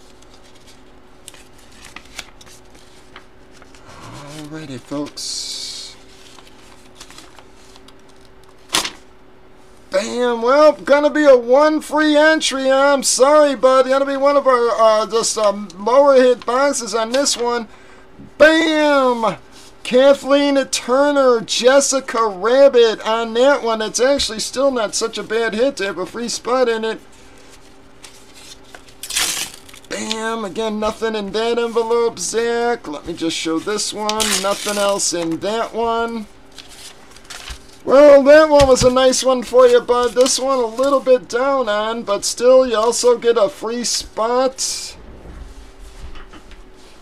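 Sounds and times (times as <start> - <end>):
paper envelope rustling: 0.0 - 5.2, 6.0 - 9.0, 27.2 - 32.0, 33.0 - 37.9, 38.6 - 41.1
faint steady hum: 0.0 - 47.0.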